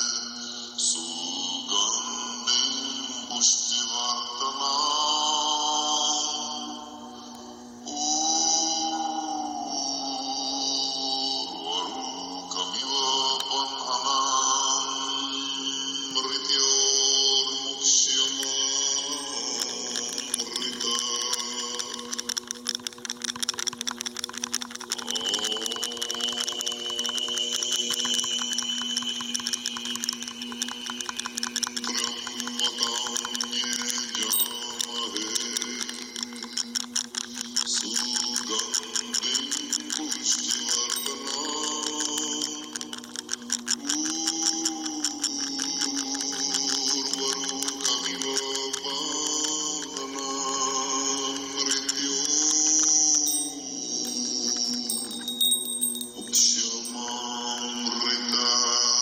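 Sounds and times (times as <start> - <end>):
low chanting voices: 0.0 - 22.6, 37.3 - 59.0.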